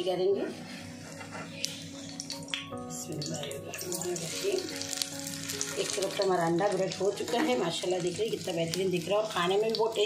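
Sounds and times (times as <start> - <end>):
background music: 0.0 - 10.0
bread sizzling in hot oil: 3.2 - 10.0.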